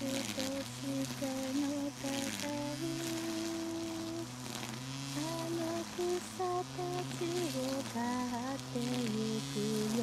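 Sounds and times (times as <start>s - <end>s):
grass trimmer humming: 0.0s - 10.0s.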